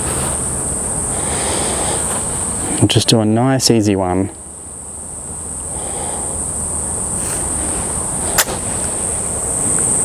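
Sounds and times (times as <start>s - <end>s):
insects droning: 0.0s - 10.0s.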